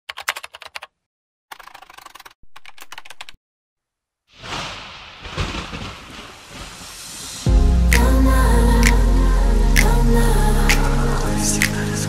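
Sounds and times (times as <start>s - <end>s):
loud hissing noise: 6.5s - 8.0s.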